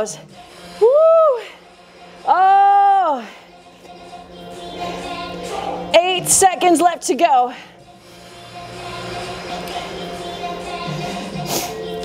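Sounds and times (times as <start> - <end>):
background music sustained tones: 0.0 - 12.0.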